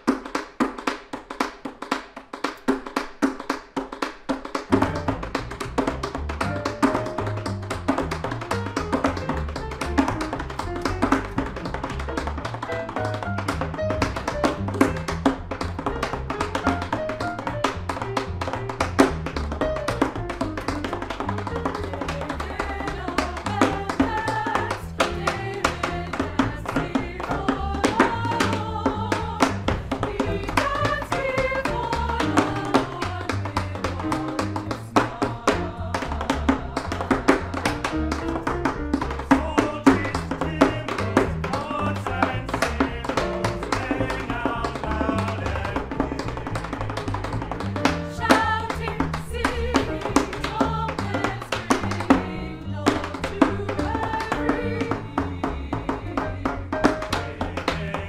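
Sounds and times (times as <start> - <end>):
tap shoes on wooden board: 0.0 - 58.0
jazz piano: 4.6 - 58.0
upright bass: 4.7 - 58.0
choir singing: 22.5 - 33.5.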